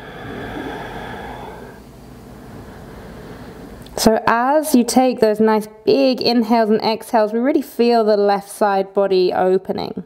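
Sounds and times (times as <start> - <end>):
woman breathing deeply: 0.0 - 3.7.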